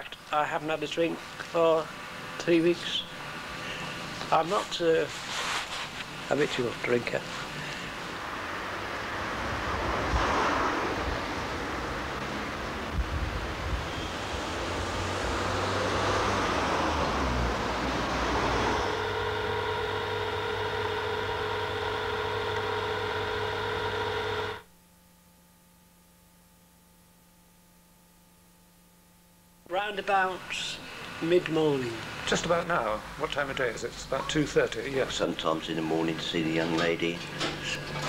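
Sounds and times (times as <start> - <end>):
passing cars: 8.4 - 19.9
droning hum: 16.4 - 38.0.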